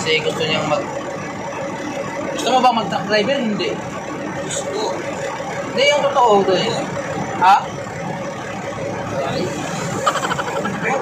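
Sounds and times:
truck engine running: 0.0s - 11.0s.

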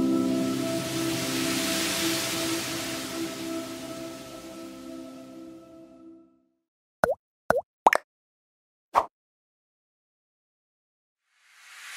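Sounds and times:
music: 0.0s - 6.6s
cartoon pop sound effects: 7.0s - 8.0s.

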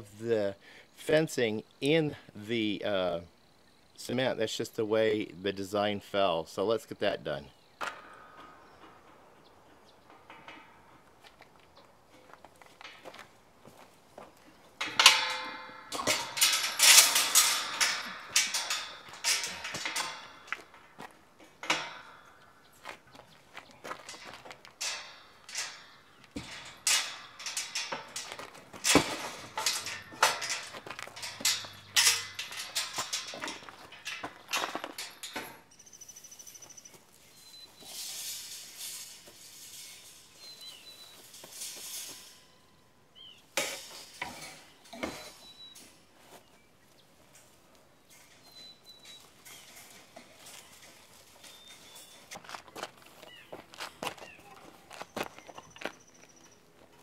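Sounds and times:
metal gate and wire fence rattling: 6.6s - 46.4s, 47.2s - 57.0s.

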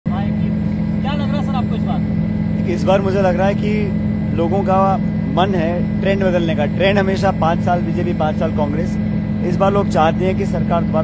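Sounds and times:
aircraft engine drone: 0.1s - 11.0s
man speaking: 0.1s - 11.0s.

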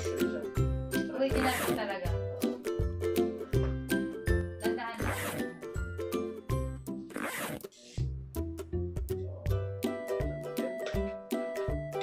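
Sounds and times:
upbeat background music: 0.0s - 12.0s
swishing rasps: 1.4s - 1.8s, 5.0s - 5.5s, 7.1s - 7.7s.

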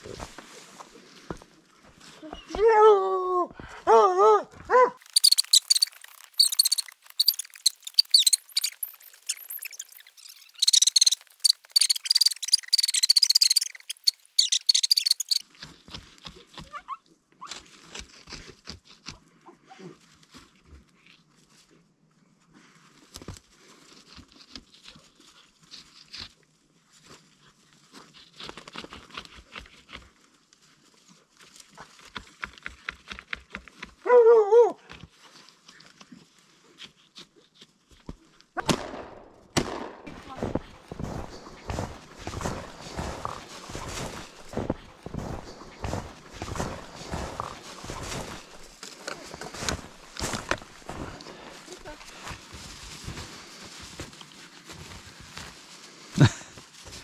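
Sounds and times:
footsteps crunching through snow: 0.0s - 2.6s, 4.6s - 12.2s, 38.6s - 57.0s
rustling and scraping in snow: 0.0s - 2.8s, 4.7s - 16.8s, 19.9s - 32.3s, 40.1s - 57.0s
dog barking: 3.9s - 5.0s.

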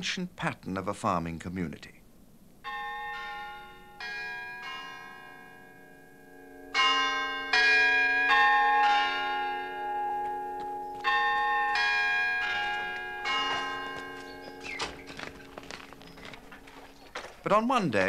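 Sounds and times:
church bells ringing: 2.6s - 18.0s.

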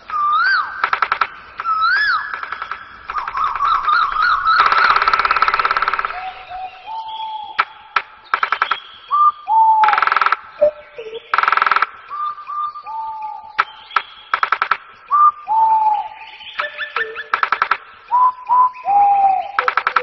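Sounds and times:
songbird singing: 0.0s - 20.0s.

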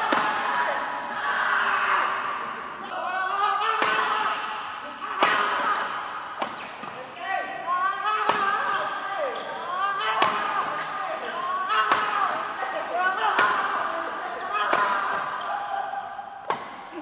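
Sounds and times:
racket hitting shuttlecock: 3.8s - 4.6s, 5.2s - 7.0s, 8.2s - 9.0s, 10.2s - 10.9s, 11.9s - 12.5s, 13.4s - 13.8s, 14.6s - 15.4s, 16.4s - 16.9s.

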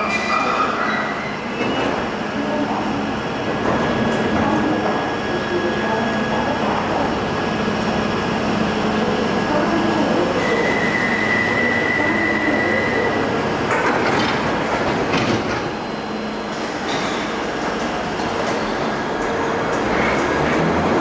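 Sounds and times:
train high whine: 4.0s - 13.7s
train doors clattering shut: 13.6s - 15.8s, 16.4s - 20.6s.

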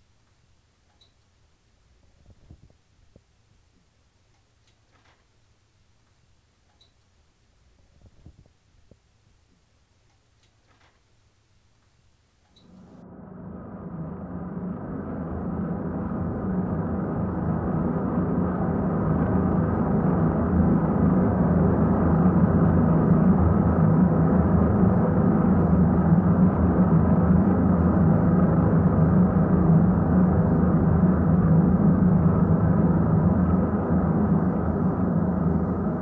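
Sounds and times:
low rumbling drone: 12.6s - 36.0s.

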